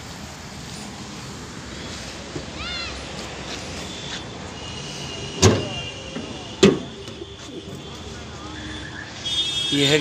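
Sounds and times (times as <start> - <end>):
car bonnet metal clunks: 5.4 - 7.2.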